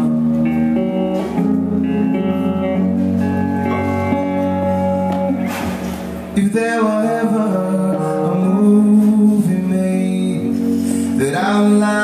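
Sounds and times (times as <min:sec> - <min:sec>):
electric guitar chords: 0:00.0 - 0:12.0
keyboard playing held chords: 0:00.0 - 0:12.0.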